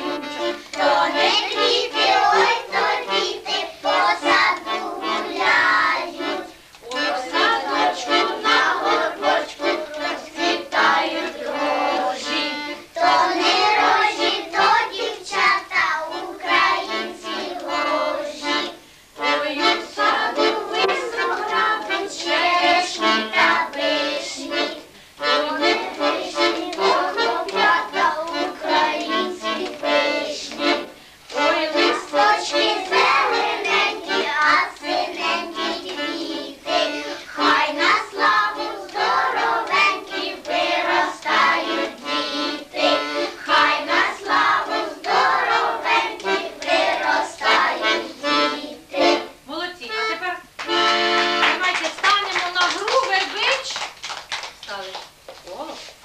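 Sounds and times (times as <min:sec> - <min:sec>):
children singing: 0:00.0 - 0:49.3
instrumental accompaniment: 0:00.0 - 0:52.2.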